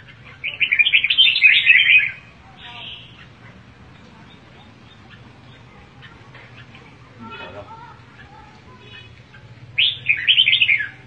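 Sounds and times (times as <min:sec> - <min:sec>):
bird chirping song: 0:00.0 - 0:11.0.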